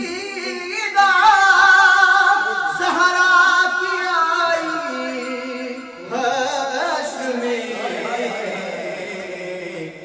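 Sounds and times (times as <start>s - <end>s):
man singing melismatically: 0.0s - 10.0s.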